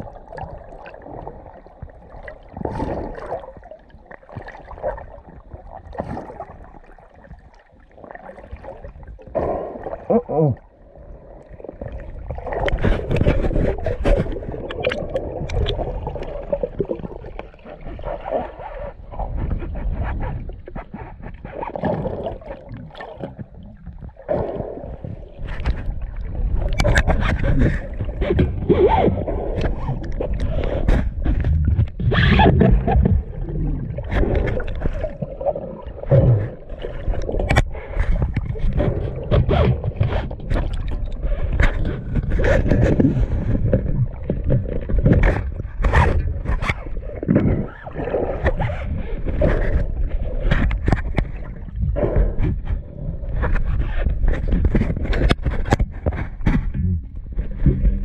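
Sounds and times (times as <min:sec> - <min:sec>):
water rushing and splashing: 0:11.3 - 0:19.0
knocks and scrapes against camera: 0:12.6 - 0:17.4, 0:19.2 - 0:24.0, 0:25.0 - 0:33.4, 0:36.1 - 0:58.0.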